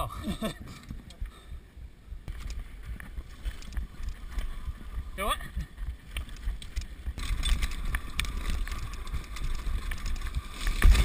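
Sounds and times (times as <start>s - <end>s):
wind buffeting microphone: 0.0s - 11.0s
sharp clicks and knocks from bike: 2.2s - 4.8s, 5.6s - 11.0s
mountain bike rattling over rocks: 2.3s - 11.0s.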